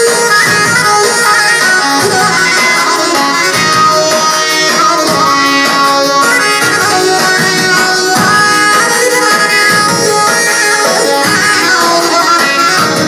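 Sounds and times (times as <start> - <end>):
instrumental folk music on keyboard: 0.0 - 13.0.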